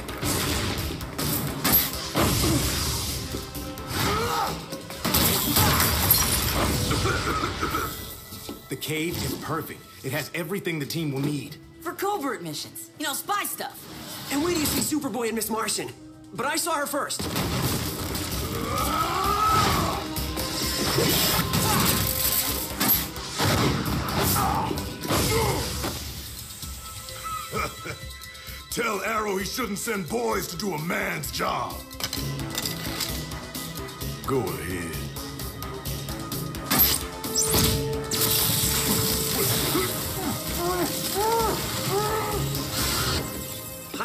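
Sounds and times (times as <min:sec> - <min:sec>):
dramatic music score: 0:00.0 - 0:44.0.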